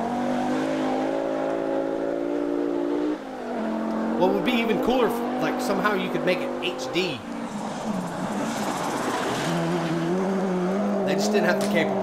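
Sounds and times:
rally car engine: 0.0 - 12.0
gravel rushing under tyres: 7.2 - 12.0.

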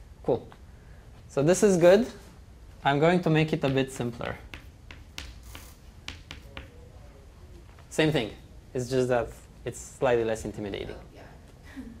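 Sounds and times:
chalk tapping on blackboard: 3.5 - 6.8
chalk scratching on blackboard: 4.4 - 6.7.

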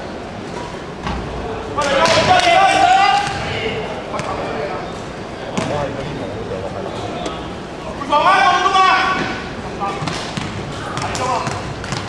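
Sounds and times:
voices shouting in echoing hall: 1.2 - 11.8
basketball bouncing on court floor: 10.0 - 12.0.

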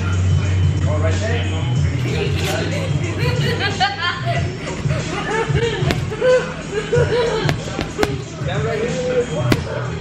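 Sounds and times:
background music with singing: 0.0 - 10.0
punches hitting a punching bag: 5.9 - 6.4, 7.4 - 8.3.

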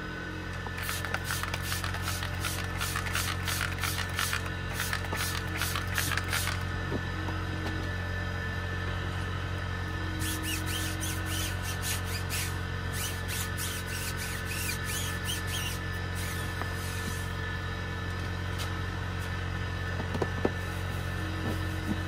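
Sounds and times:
steady low hum: 0.0 - 22.0
stiff brush scrubbing tire: 0.7 - 6.7, 10.1 - 17.4
trigger spray bottle spritzing: 0.8 - 6.6, 10.4 - 16.4.

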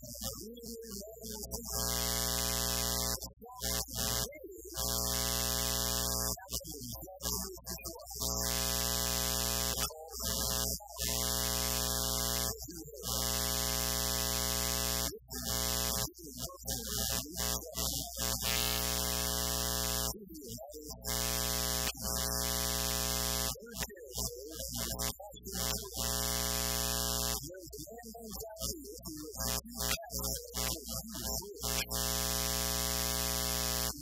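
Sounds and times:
faint man's voice: 0.0 - 2.2, 6.1 - 8.5, 12.4 - 13.2, 15.2 - 18.7, 20.1 - 21.0, 23.6 - 26.2, 27.4 - 31.9
loud electrical buzz: 1.2 - 20.2, 20.9 - 27.5, 29.3 - 34.0.

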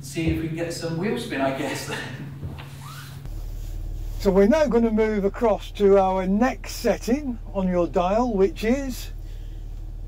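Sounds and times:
car engine low hum from inside: 1.9 - 10.0.

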